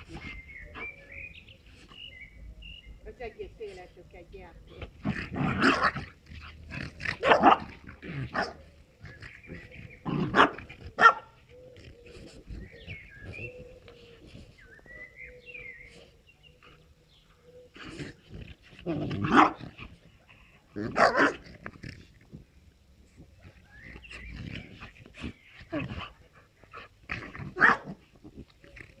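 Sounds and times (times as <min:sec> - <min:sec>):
dogs barking in play: 0:04.8 - 0:14.6, 0:17.6 - 0:22.4, 0:23.0 - 0:29.0.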